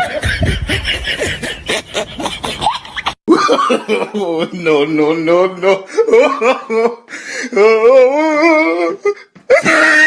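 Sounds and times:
snickering and chuckling laughter: 0.0s - 4.2s.

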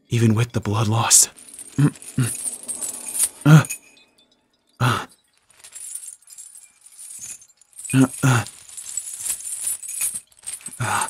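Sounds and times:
metal chains jangling: 1.0s - 11.0s
man grunting in pain: 3.5s - 3.7s, 4.8s - 5.1s, 8.0s - 8.5s.

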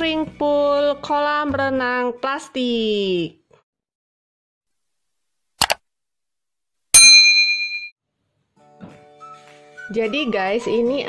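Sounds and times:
notification bell ding: 7.0s - 7.9s.

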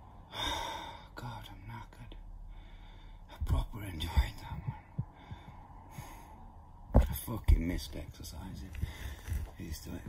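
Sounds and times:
quiet breaths: 0.0s - 6.9s, 7.8s - 10.0s.

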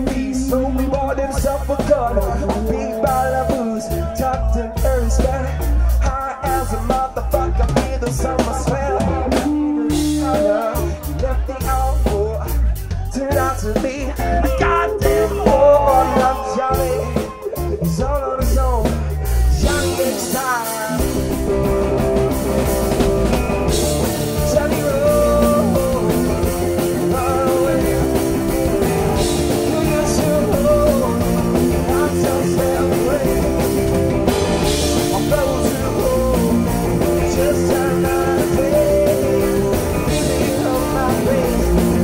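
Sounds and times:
electric guitar lead lines: 0.0s - 5.9s, 8.0s - 11.5s, 19.5s - 42.0s
live rock band playing: 0.0s - 42.0s.

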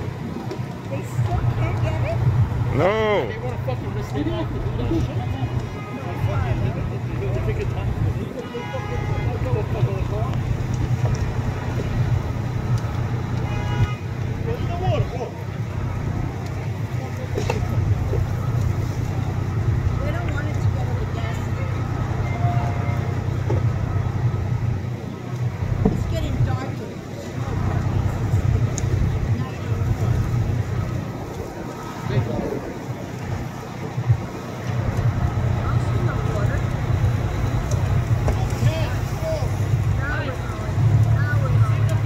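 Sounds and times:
vehicle engine running: 0.0s - 42.0s.

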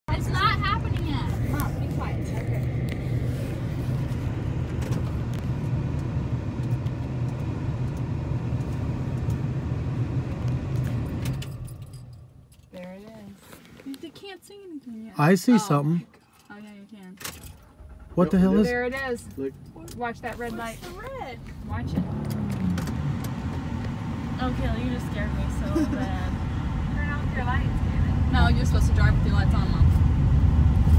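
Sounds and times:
car driving on gravel: 0.2s - 12.1s, 20.0s - 30.9s.

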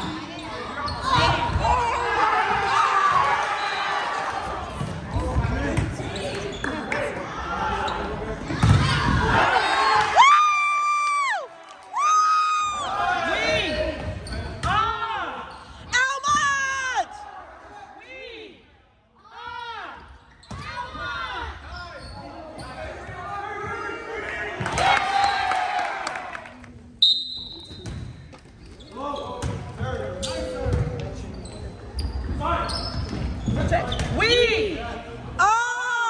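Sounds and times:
sneakers squeaking on gym floor: 0.0s - 2.2s, 5.7s - 6.9s, 13.9s - 14.7s, 20.3s - 20.8s, 21.6s - 23.1s, 27.0s - 34.3s
volleyball hits: 8.4s - 9.4s.

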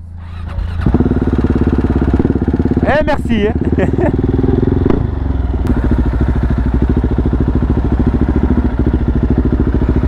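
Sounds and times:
motorcycle engine revving: 0.2s - 10.0s.

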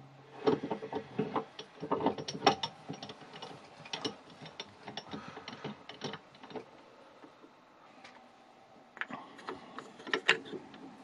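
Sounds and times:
metallic clicks and ticks: 0.4s - 8.2s.

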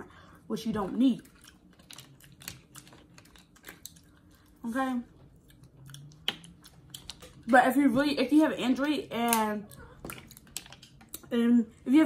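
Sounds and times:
nails and shells clicking: 10.1s - 11.2s.

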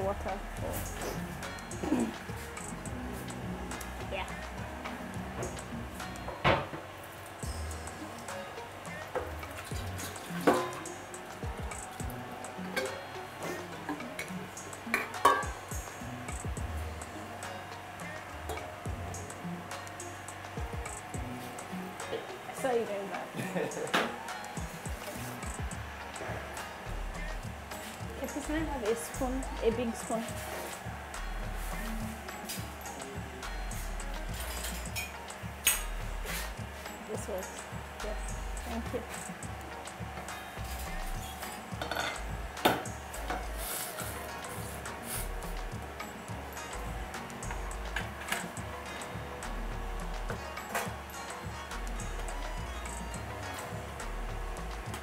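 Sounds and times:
pot cooking on gas stove: 0.0s - 52.4s
background music: 0.0s - 55.0s
metal kettle and pots clinking: 9.1s - 10.9s, 12.7s - 14.3s, 14.9s - 15.6s, 41.3s - 43.4s.

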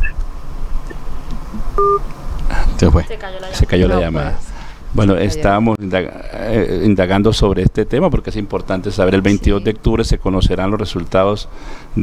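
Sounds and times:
telephone line hum: 1.5s - 2.1s
two-tone telephone beep: 1.8s - 2.0s.

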